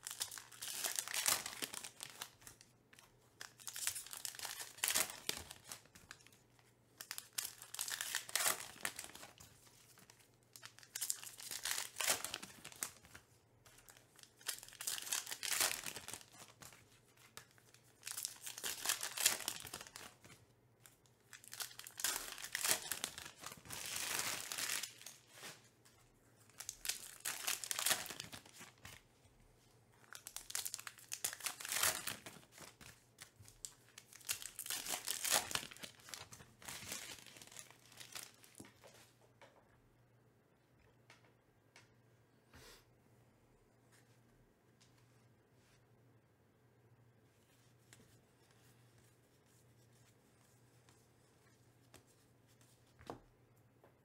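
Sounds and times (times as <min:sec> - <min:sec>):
card pack wrappers tearing: 0:00.0 - 0:02.4, 0:07.0 - 0:09.3, 0:14.2 - 0:16.6, 0:18.0 - 0:20.2, 0:21.3 - 0:25.5, 0:26.6 - 0:28.9, 0:30.1 - 0:33.0, 0:34.0 - 0:38.4.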